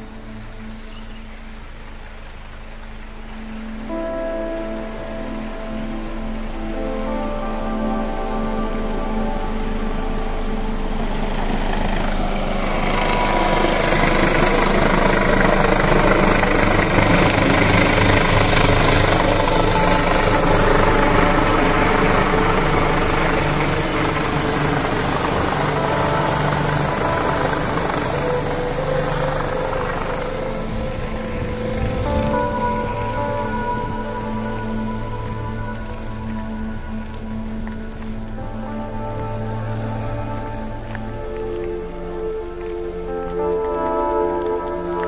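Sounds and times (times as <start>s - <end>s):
aircraft engine passing overhead: 0.0s - 45.0s
background music: 0.0s - 45.0s.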